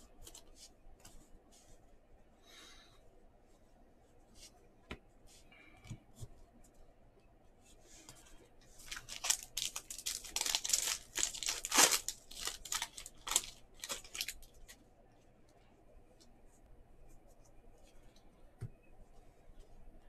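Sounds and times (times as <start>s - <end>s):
wrapper tearing and crinkling: 8.8s - 14.6s.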